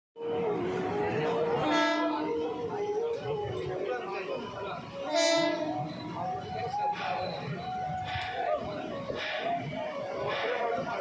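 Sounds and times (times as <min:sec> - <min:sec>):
moving train running noise: 0:00.2 - 0:11.0
train horn blast: 0:01.5 - 0:02.4, 0:05.0 - 0:06.0.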